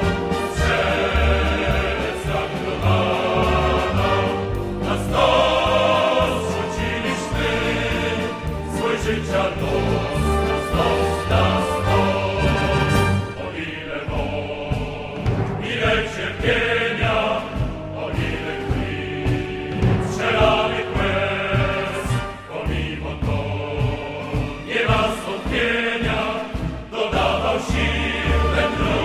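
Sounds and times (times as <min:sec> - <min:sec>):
choir singing: 0:00.0 - 0:29.0
instrumental accompaniment: 0:00.0 - 0:29.0.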